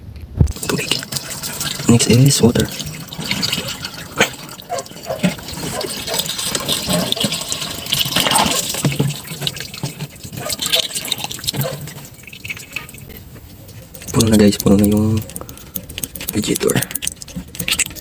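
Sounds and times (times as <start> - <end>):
water splashing and gurgling: 0.5 - 18.0.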